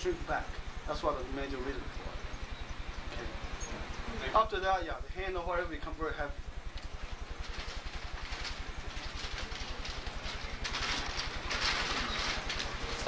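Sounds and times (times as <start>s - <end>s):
pulsing low hum: 0.0s - 13.0s.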